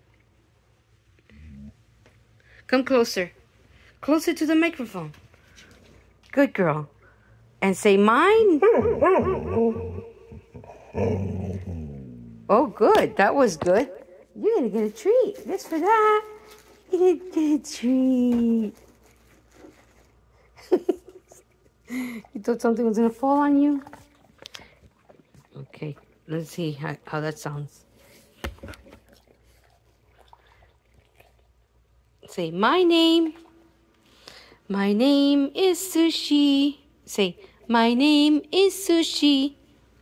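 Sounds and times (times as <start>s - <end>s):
dog growling: 1.3s - 1.8s, 8.7s - 12.5s.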